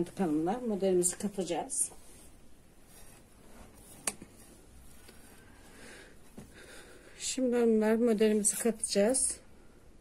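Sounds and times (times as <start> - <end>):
knitting needles handling: 1.0 - 5.5.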